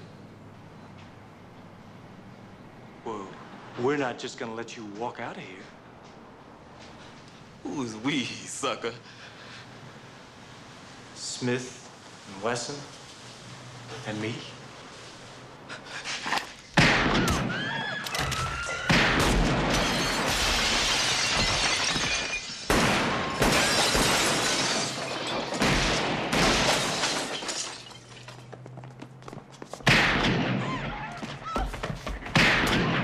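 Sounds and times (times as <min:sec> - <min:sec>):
gunshots: 0:16.8 - 0:20.7, 0:22.7 - 0:24.5, 0:29.8 - 0:31.0, 0:32.3 - 0:33.0
debris falling: 0:16.8 - 0:28.5
glass shattering: 0:18.2 - 0:28.4.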